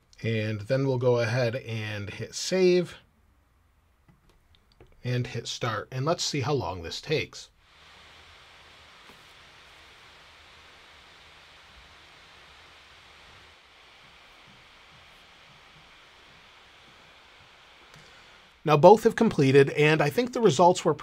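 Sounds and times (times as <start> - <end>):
laptop cooling fans whirring: 7.1 - 19.4.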